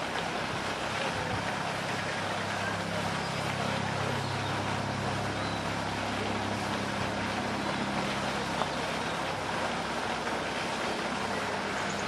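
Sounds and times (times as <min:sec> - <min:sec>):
distant engine hum: 0:00.0 - 0:12.0.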